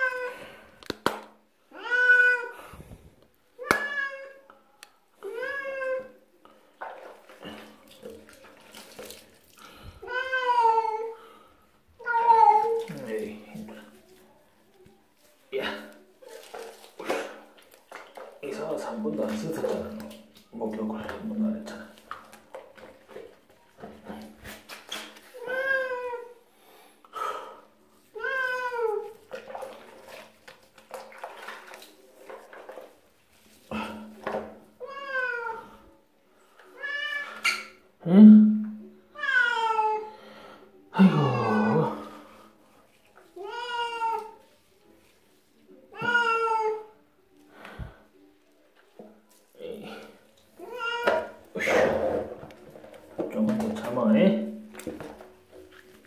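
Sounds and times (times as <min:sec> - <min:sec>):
cat meowing: 0:01.7 - 0:02.6, 0:10.0 - 0:11.1, 0:34.8 - 0:35.7, 0:39.2 - 0:40.1, 0:43.4 - 0:44.4, 0:45.9 - 0:46.9, 0:50.6 - 0:51.4.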